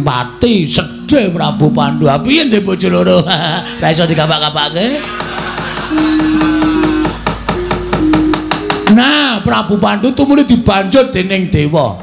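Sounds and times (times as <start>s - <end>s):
sustained musical note: 0.0s - 10.1s
rapid wooden knocking: 4.3s - 9.1s.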